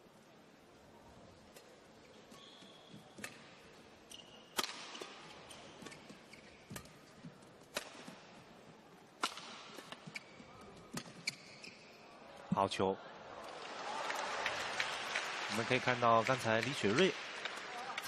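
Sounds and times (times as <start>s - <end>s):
shoes squeaking on court: 2.1s - 3.4s, 4.1s - 7.1s, 9.7s - 12.0s
racket striking shuttlecock: 4.5s - 5.2s, 7.7s - 8.2s, 9.2s - 10.2s.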